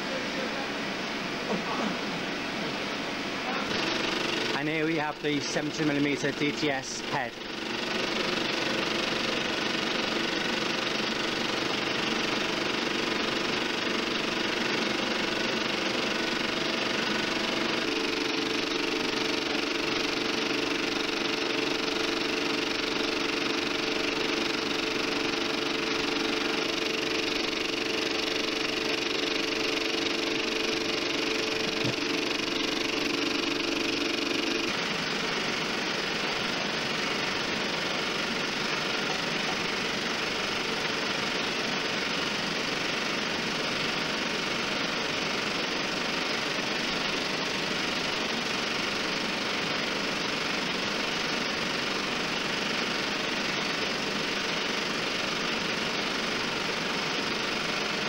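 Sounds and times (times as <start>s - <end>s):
steady hum: 0.0s - 44.5s
film projector whir and clatter: 0.0s - 58.0s.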